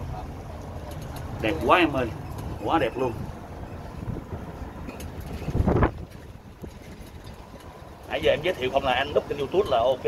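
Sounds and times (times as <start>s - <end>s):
low rumble of moving cart: 0.0s - 10.0s
wind rushing over microphone: 1.3s - 8.5s.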